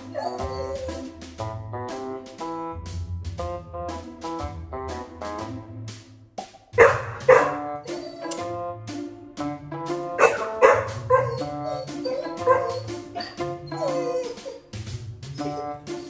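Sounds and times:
puppy barking: 0.0s - 1.0s, 6.8s - 8.5s, 10.1s - 14.6s
background music: 0.0s - 16.0s.

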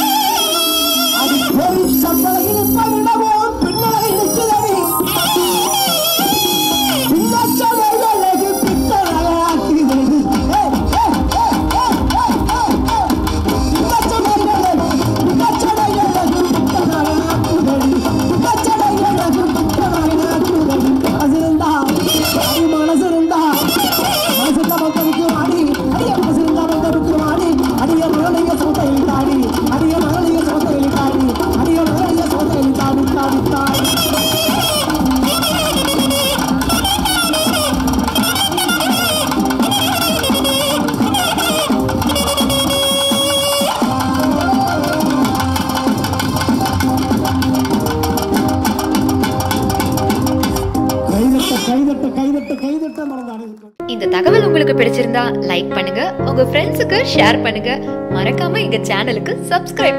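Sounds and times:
live folk band melody: 0.0s - 52.4s
drum accompaniment: 0.0s - 59.9s.

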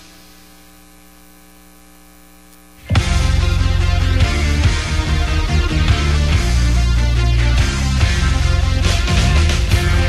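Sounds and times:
electrical mains hum: 0.0s - 3.8s.

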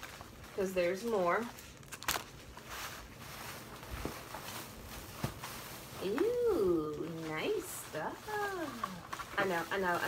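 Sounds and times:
cellophane rustling: 0.0s - 10.0s
plastic bag rustling: 0.0s - 10.0s.

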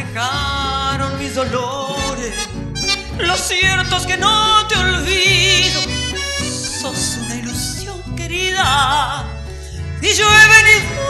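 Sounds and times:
accordion: 0.0s - 11.0s
woman singing with vibrato: 3.2s - 7.7s, 8.4s - 9.3s, 10.0s - 11.0s.

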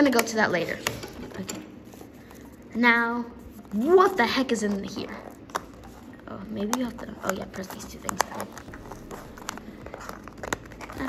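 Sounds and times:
cardboard rustling: 3.4s - 11.0s.

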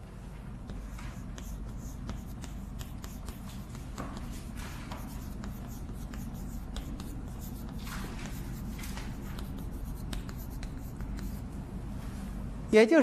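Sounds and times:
chalk scratching on chalkboard: 0.6s - 11.5s
chalk tapping on chalkboard: 0.6s - 11.5s.

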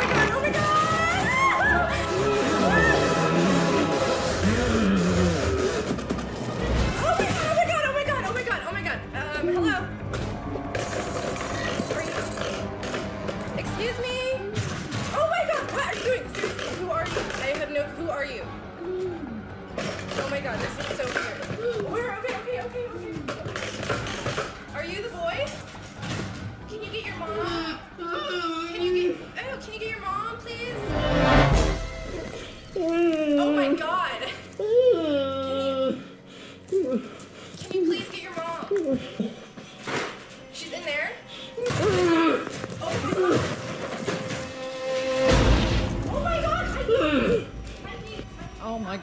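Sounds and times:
background music: 0.0s - 49.0s.

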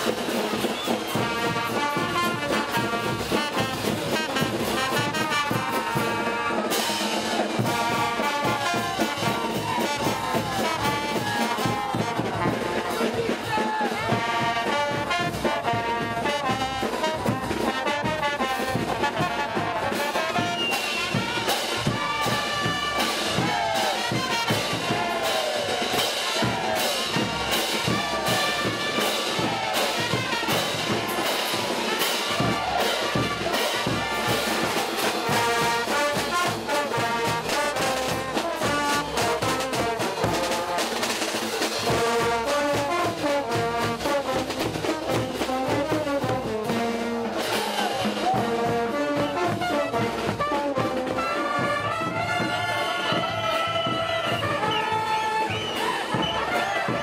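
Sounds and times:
bass drum beat: 0.0s - 54.9s
cymbals: 0.0s - 57.0s
snare drum: 0.0s - 57.0s
trumpets and trombones melody: 0.0s - 57.0s.

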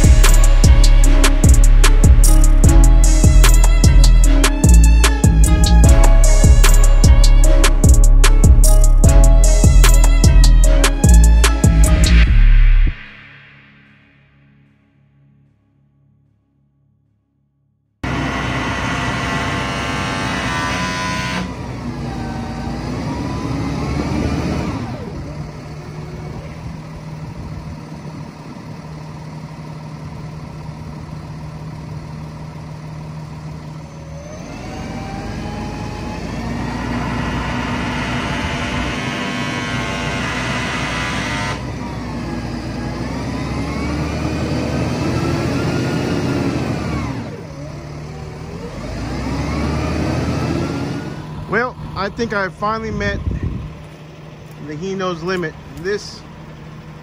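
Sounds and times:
diesel truck engine revving: 0.0s - 13.1s, 18.0s - 57.0s.

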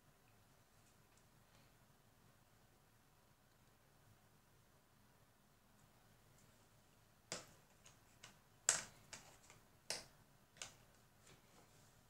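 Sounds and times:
light sharp clicks and taps: 7.3s - 11.5s.

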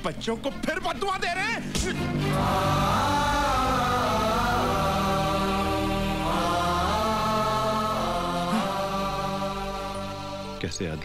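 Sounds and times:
film score of chant-like tones: 1.7s - 11.0s.

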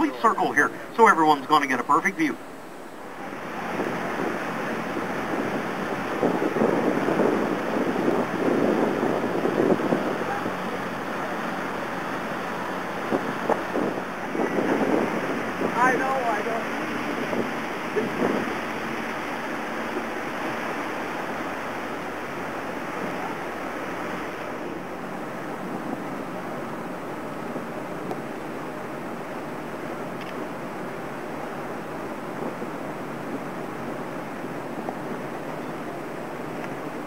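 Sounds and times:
water moving past boat: 0.0s - 37.0s
wind on microphone: 2.4s - 37.0s.

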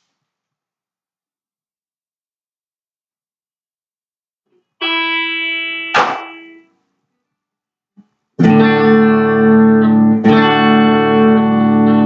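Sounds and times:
guitar chords strummed: 4.8s - 6.7s, 8.4s - 12.0s.

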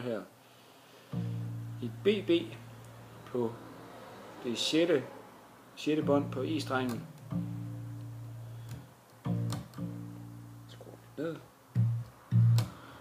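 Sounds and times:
electric bass guitar notes: 1.1s - 3.8s, 6.0s - 13.0s.

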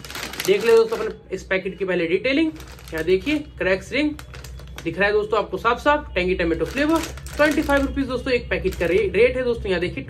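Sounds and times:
plastic snack packet crackling: 0.0s - 5.4s, 6.4s - 9.4s
man talking: 0.4s - 4.2s.

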